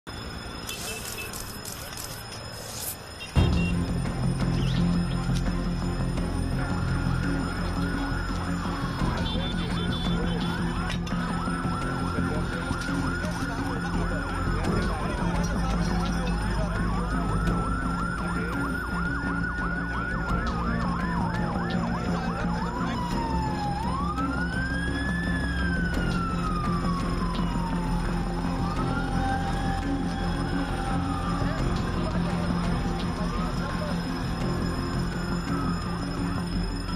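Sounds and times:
emergency sirens wailing: 0.0 - 36.9
yelping siren warble: 4.9 - 36.9.

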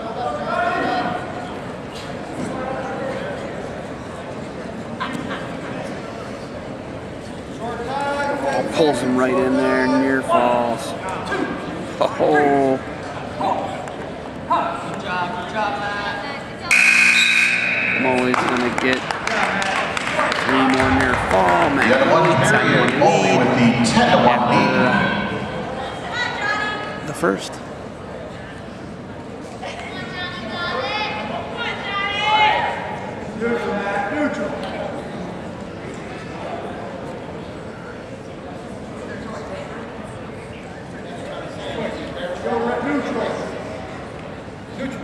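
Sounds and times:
crowd hum: 16.2 - 31.9
scoreboard buzzer: 16.7 - 18.6
people shouting in gymnasium: 30.6 - 33.0.

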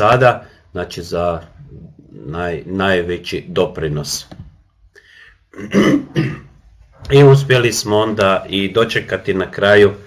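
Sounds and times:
man clearing his throat: 5.5 - 6.6.

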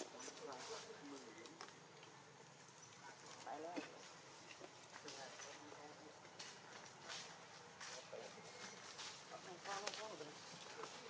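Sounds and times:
faint scattered clicks: 0.3 - 3.5.

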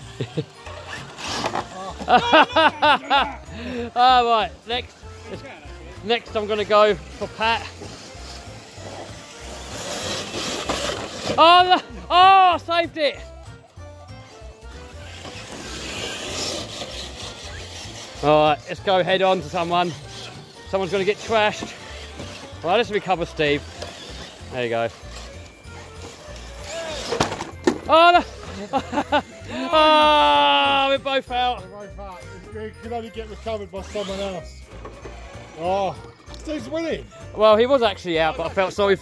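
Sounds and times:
background music: 0.0 - 39.0
toy trucks colliding knock: 27.0 - 27.9.

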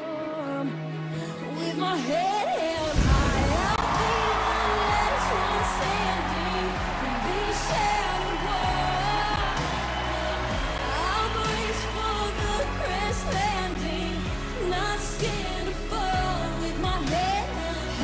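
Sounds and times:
woman singing pop ballad: 0.0 - 18.0.

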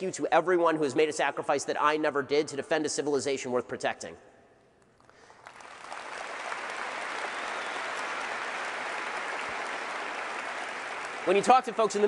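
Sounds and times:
audience applauding: 5.2 - 12.0.

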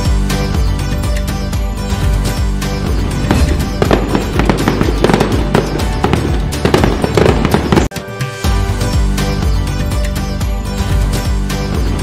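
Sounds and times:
festive background music: 0.0 - 12.0
firework bangs and crackling: 2.9 - 7.9.

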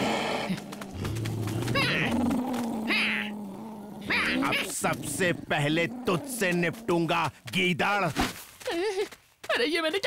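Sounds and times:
cartoon animal growling: 0.0 - 7.0.

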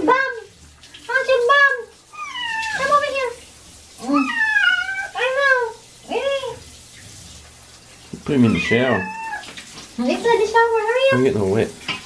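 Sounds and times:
handheld shower running: 0.0 - 12.0
cat meowing: 2.1 - 3.2, 4.0 - 5.7, 8.3 - 9.6.

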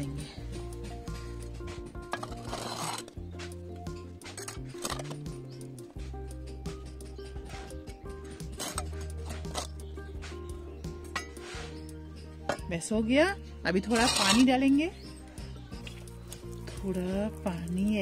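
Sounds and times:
trowel scraping soil: 0.0 - 6.2, 7.1 - 12.8, 13.7 - 15.1
background music: 0.0 - 18.0.

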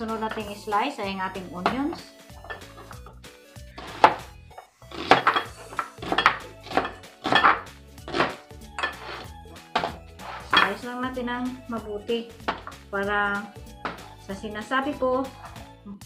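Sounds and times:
background music: 0.0 - 16.0
knife slicing onion on board: 3.8 - 4.3, 4.9 - 10.7.

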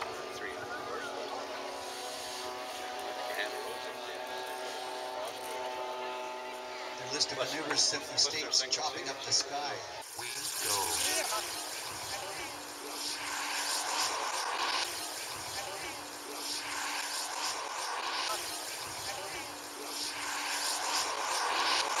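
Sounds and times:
model airplane engine drone: 0.0 - 22.0.

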